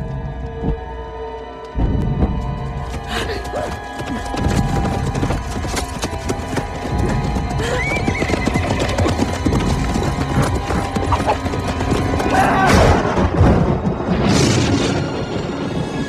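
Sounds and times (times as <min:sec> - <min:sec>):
dark orchestral music: 0:00.0 - 0:16.0
horse hoofbeats pounding: 0:01.8 - 0:12.7
horse whinnying: 0:07.6 - 0:09.4.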